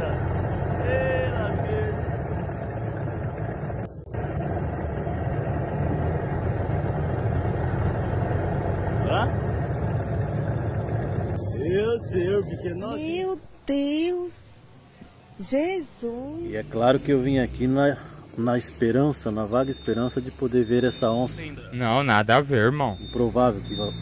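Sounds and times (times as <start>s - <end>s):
outboard motor running: 0.0s - 12.9s.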